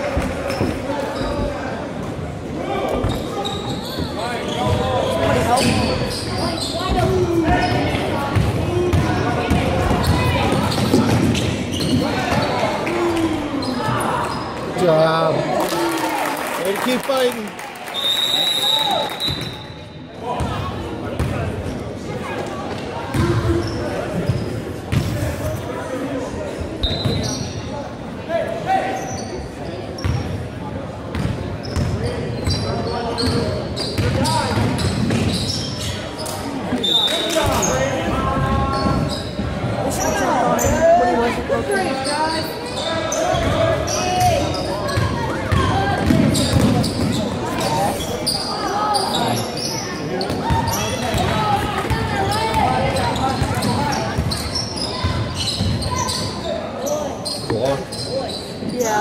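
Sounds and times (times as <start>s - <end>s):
echoing shouts and talk: 0.0s - 59.0s
sneakers squeaking: 0.1s - 1.7s, 2.9s - 14.6s, 23.1s - 25.7s, 26.6s - 27.7s, 28.8s - 30.4s, 31.1s - 41.1s, 41.7s - 59.0s.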